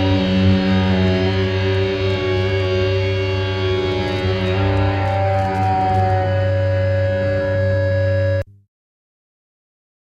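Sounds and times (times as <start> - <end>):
distorted guitars and bass droning: 0.0 - 8.6.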